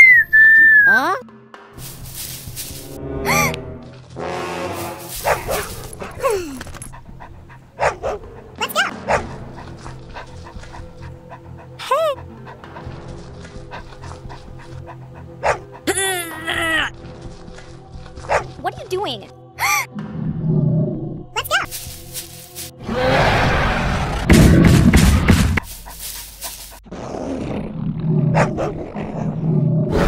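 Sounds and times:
background music: 0.0 - 26.8.

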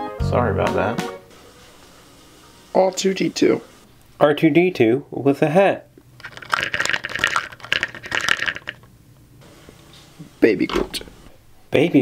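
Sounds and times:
handling rustling and clattering: 6.2 - 8.9.

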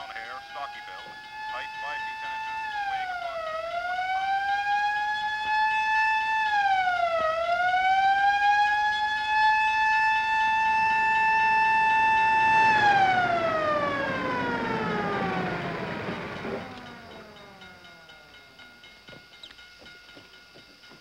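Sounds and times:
mechanical siren wailing: 0.0 - 18.8.

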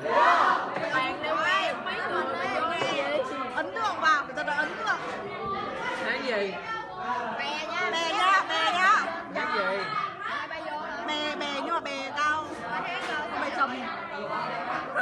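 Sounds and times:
overlapping chatter: 0.0 - 15.0.

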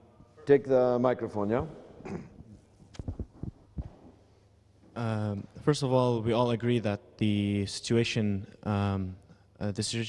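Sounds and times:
microphone handling thumps: 2.1 - 4.1.

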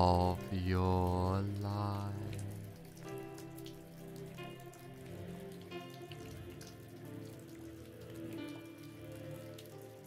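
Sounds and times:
rain falling: 0.0 - 10.0
soft ambient music pad: 0.0 - 10.0.

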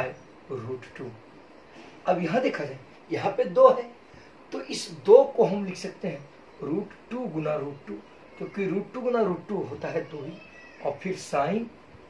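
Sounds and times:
man speaking: 0.0 - 1.3, 2.0 - 11.8.

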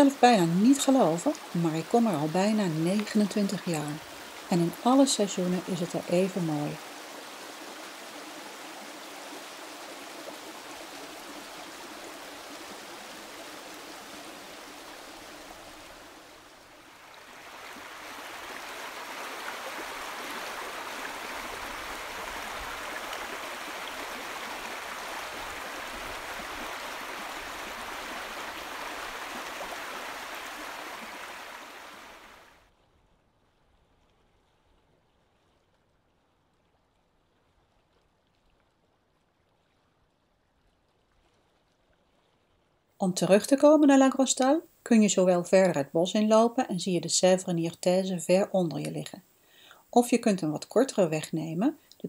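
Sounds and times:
stream rushing over stones: 0.0 - 32.6.

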